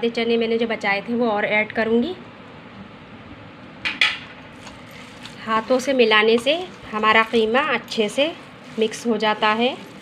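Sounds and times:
hands kneading minced meat: 0:04.5 - 0:10.0.

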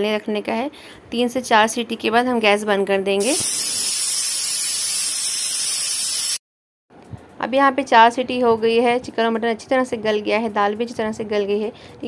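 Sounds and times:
pressure cooker steam hissing: 0:03.2 - 0:06.4.

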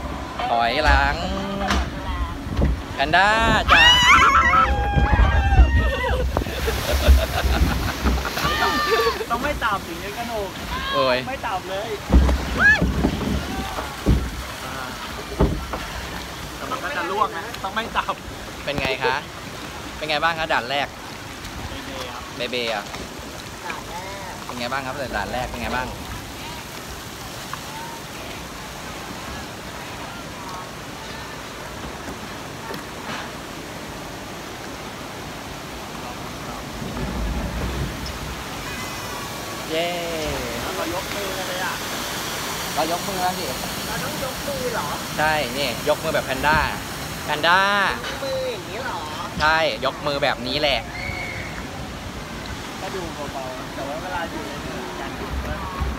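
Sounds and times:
water noise: 0:00.0 - 0:55.9
wind on microphone: 0:01.8 - 0:08.4
low thump: 0:12.0 - 0:14.5, 0:15.4 - 0:15.9.

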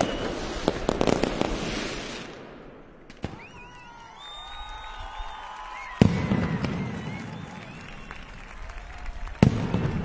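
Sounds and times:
firecracker crackle: 0:00.0 - 0:10.0.

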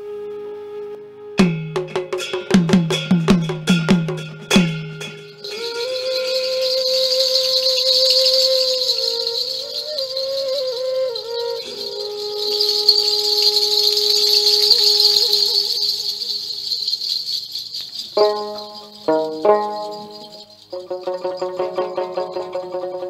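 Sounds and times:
pitch-bending melody: 0:00.0 - 0:23.0
plucked string notes: 0:01.4 - 0:06.9, 0:18.2 - 0:23.0
continuous rattle: 0:01.4 - 0:23.0.

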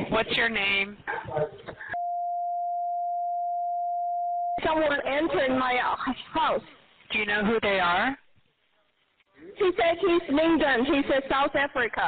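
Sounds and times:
steady censor bleep: 0:02.0 - 0:04.6.

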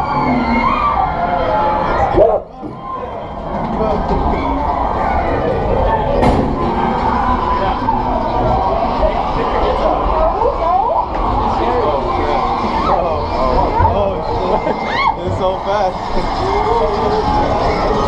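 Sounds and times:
rising and falling cries: 0:00.0 - 0:02.2, 0:02.8 - 0:18.0
indistinct voices: 0:00.0 - 0:18.0
droning soundtrack: 0:02.8 - 0:18.0.

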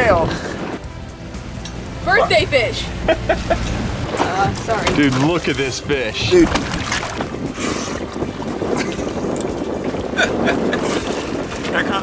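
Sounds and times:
wind buffeting microphone: 0:00.0 - 0:00.9, 0:01.7 - 0:12.0
water sloshing against boat: 0:00.0 - 0:12.0
splashes and knocks: 0:03.3 - 0:12.0.

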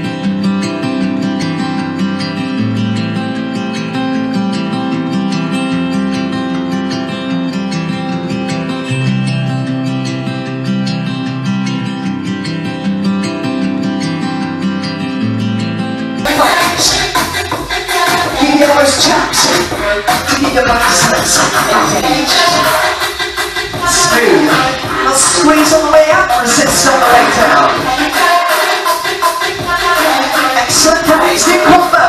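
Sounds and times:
strummed acoustic guitar music: 0:00.0 - 0:32.0.

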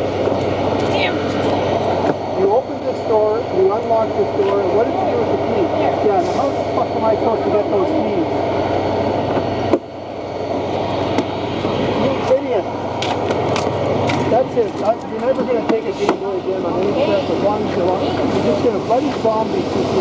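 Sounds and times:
overlapping chatter: 0:00.0 - 0:20.0
steady low rumble: 0:00.0 - 0:20.0.

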